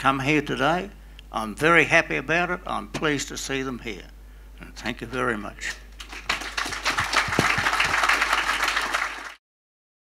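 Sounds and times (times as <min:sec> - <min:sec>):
audience applauding: 0:06.0 - 0:09.4.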